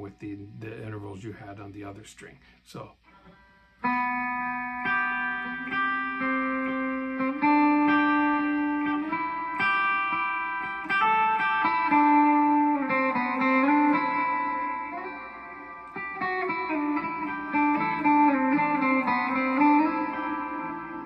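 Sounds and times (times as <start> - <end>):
clean electric guitar picking: 3.1 - 21.0.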